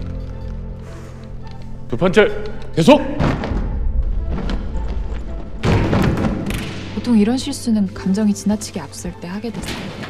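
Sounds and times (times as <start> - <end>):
dramatic film score music: 0.0 - 10.0.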